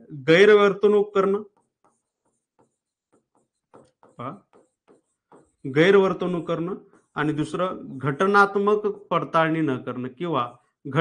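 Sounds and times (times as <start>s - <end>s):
pen scratching on a board: 1.1s - 9.3s.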